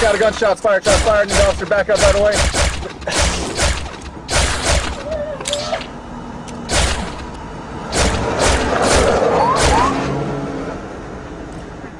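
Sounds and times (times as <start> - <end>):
handgun shots: 0.9 - 5.7.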